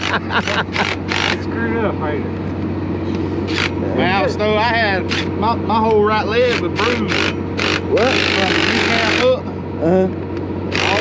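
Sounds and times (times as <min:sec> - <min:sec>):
cordless power driver: 0:00.0 - 0:01.4, 0:03.1 - 0:03.8, 0:05.1 - 0:05.3, 0:06.5 - 0:09.3, 0:10.7 - 0:11.0
low engine hum: 0:00.0 - 0:11.0.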